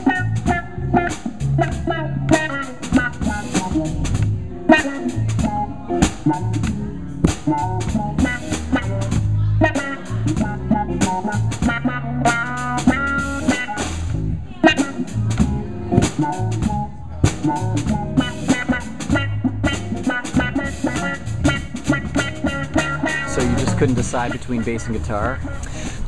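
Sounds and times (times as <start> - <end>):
drum kit beat: 0.0 - 26.0
electric guitar jazz-funk groove: 0.0 - 26.0.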